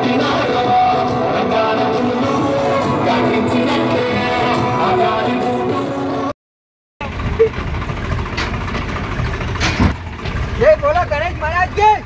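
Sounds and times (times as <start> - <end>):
music: 0.0 - 6.3
outdoor street noise: 0.0 - 6.3, 7.0 - 12.0
vehicle engine running: 7.0 - 12.0.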